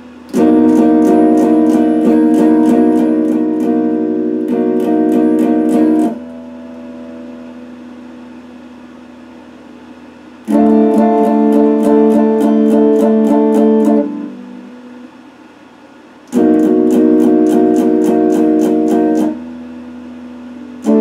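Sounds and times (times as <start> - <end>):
electric guitar strumming: 0.0 - 15.3, 16.3 - 21.0
guitar chord ringing: 0.0 - 15.5, 16.3 - 21.0.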